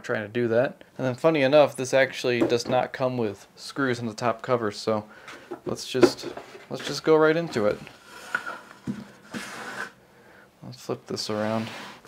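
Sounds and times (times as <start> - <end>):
scraping rustle: 6.1 - 10.0.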